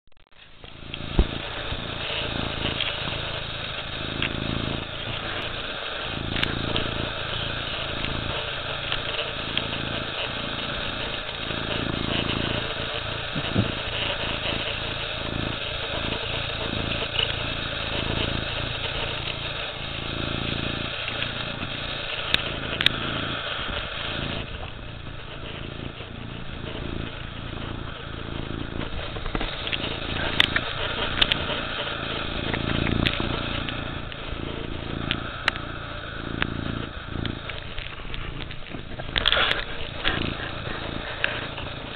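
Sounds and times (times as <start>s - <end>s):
cat purring: 0.4s - 41.9s.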